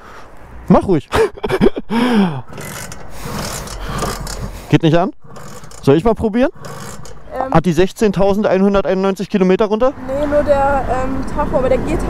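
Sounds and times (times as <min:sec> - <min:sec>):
person laughing: 0:01.1 - 0:02.5
rough scratchy noise: 0:02.5 - 0:07.6.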